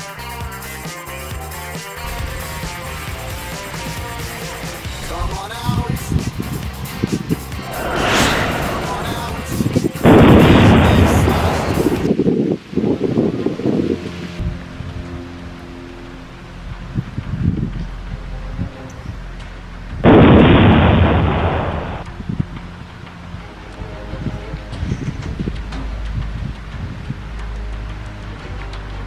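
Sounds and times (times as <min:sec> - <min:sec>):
rumbling blast sound effect: 0:07.6 - 0:10.9.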